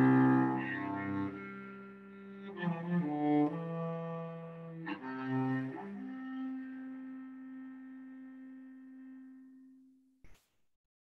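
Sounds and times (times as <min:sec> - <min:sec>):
cello long held note: 0:00.0 - 0:09.9.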